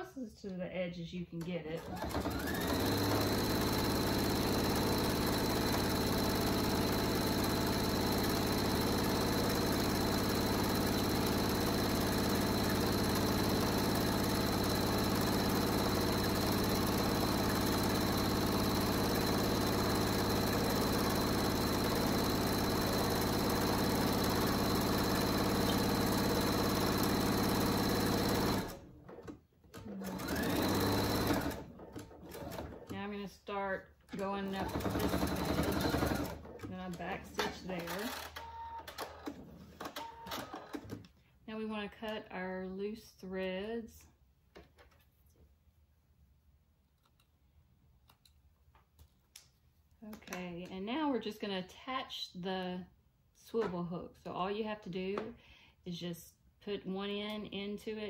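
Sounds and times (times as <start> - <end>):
sewing machine stitching: 1.7 - 41.1.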